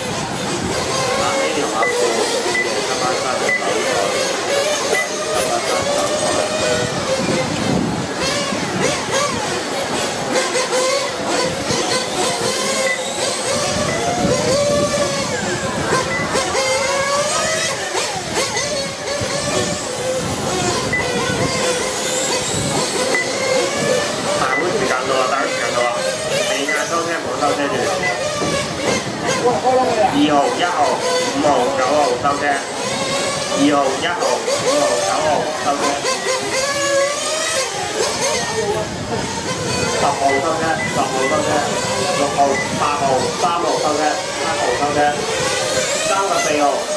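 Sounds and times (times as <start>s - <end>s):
rc motorcycle motors whining: 0.0s - 46.9s.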